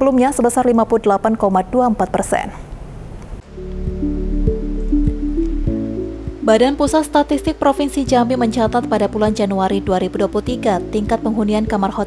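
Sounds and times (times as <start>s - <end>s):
low thumping beat: 3.4s - 11.8s
synthesizer chords: 3.4s - 12.0s.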